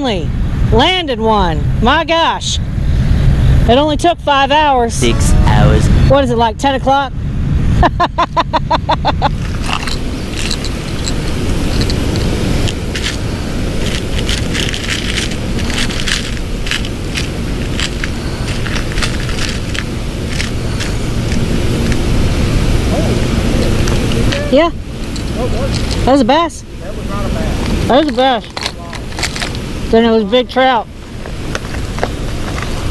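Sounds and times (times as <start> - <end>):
low rumble: 0.0 - 30.1
person laughing: 7.8 - 9.7
fishing hooks rattling in plastic box: 9.4 - 21.0, 25.0 - 26.1, 27.9 - 29.6.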